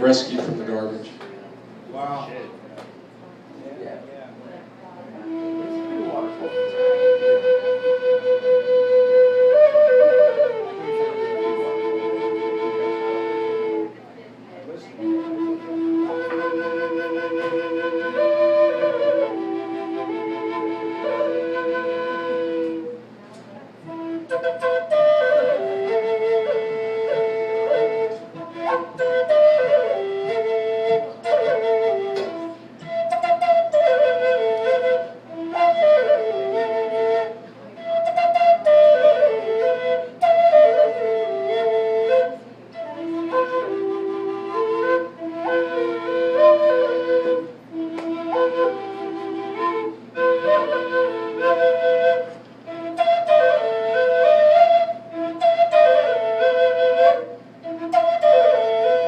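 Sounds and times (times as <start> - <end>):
drone flute playing slow melody: 5.2 - 14.0, 14.8 - 23.2, 23.8 - 59.0.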